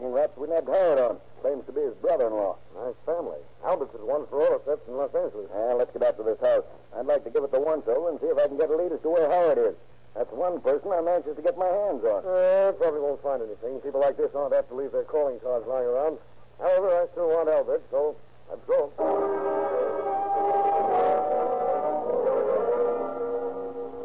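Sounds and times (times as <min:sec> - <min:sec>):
steady low hum: 0:00.0 - 0:24.0
men talking: 0:00.2 - 0:23.2
voice making wavering sound: 0:19.0 - 0:24.0.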